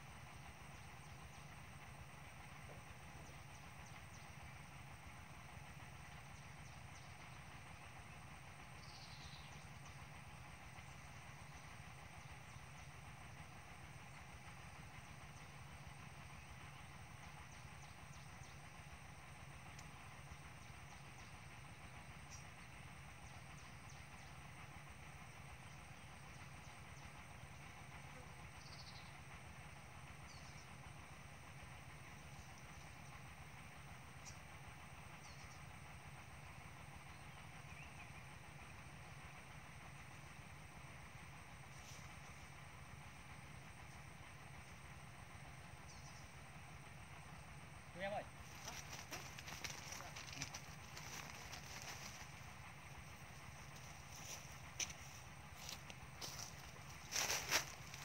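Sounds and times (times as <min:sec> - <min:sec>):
faint outdoor hiss: 0:00.0 - 0:58.0.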